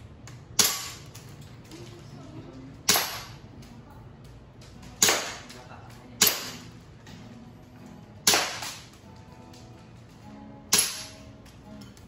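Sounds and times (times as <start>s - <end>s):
airsoft pistol shot: 2.9s - 3.3s, 5.0s - 5.5s, 8.3s - 8.8s, 10.7s - 11.2s.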